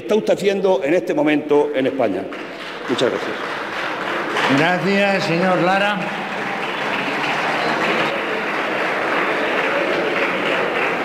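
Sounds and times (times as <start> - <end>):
group applause: 2.3 - 11.0.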